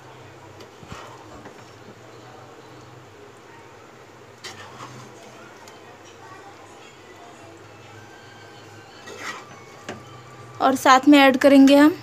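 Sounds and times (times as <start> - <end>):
spoon stirring rice in a pan: 0.2 - 6.5, 8.5 - 10.1.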